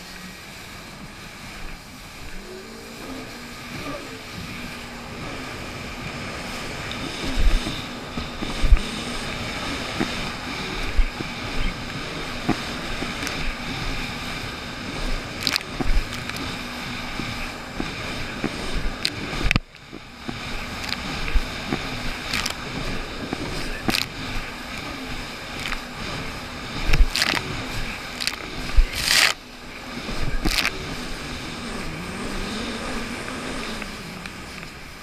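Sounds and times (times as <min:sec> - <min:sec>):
jet ski engine running: 0:00.0 - 0:35.0
wind on microphone: 0:00.0 - 0:35.0
hull thumping on waves: 0:03.3 - 0:31.8.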